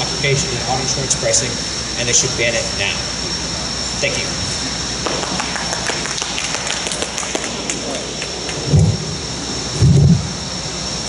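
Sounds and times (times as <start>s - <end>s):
steady background hiss: 0.0s - 11.0s
low thumps: 8.4s - 10.5s.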